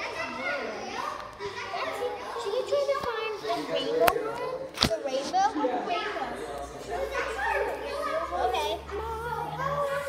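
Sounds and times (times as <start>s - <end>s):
girls talking and calling out: 0.0s - 10.0s.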